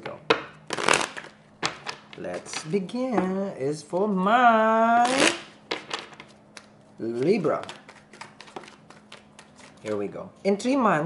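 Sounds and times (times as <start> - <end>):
cards riffle-shuffled: 7.1 - 10.1.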